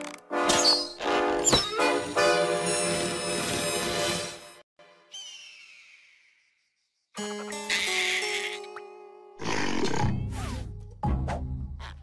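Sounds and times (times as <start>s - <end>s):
cartoon music: 7.2s - 9.4s.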